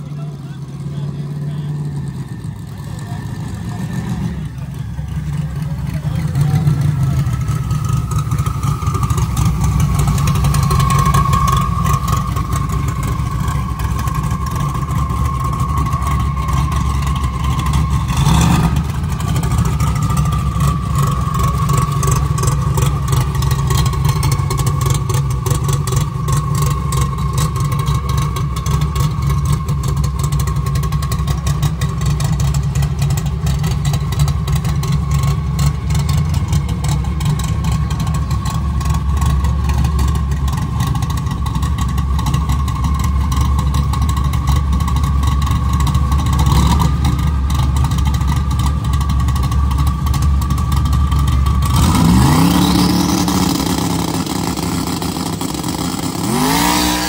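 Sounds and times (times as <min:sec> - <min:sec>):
car engine idling and revving: 0:00.0 - 0:57.0.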